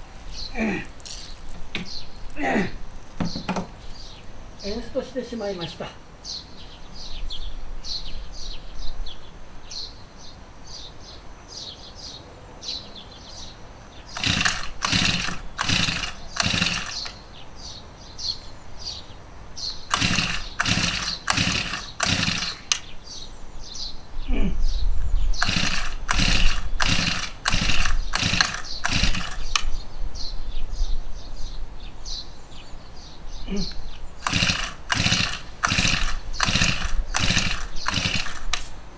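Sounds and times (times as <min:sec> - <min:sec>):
engine pull-starter yanked: 0:14.2 - 0:17.2, 0:19.9 - 0:22.9, 0:25.4 - 0:29.7, 0:34.2 - 0:38.8.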